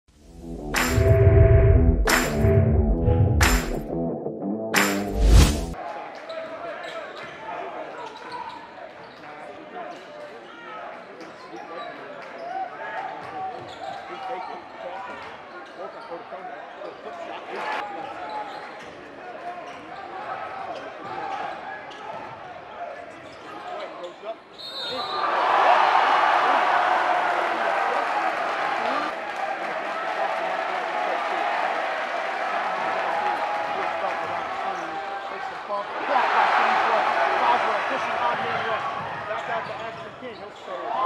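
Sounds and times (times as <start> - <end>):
crowd cheering: 0.6 - 1.2, 2.0 - 2.6, 25.1 - 39.6.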